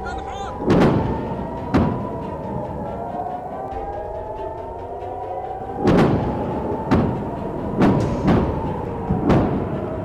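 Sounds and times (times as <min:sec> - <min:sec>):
warning siren wailing: 0:00.0 - 0:10.0.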